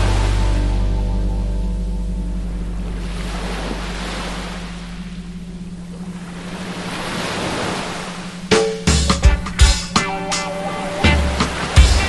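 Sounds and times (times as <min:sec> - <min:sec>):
steady low hum: 0:00.0 - 0:12.0
waves breaking on beach: 0:02.9 - 0:09.0, 0:09.8 - 0:12.0.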